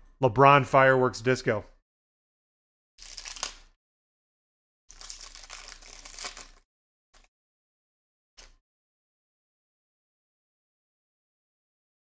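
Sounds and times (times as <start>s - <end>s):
foil wrapper crinkling: 3.0s - 3.6s, 4.9s - 6.6s.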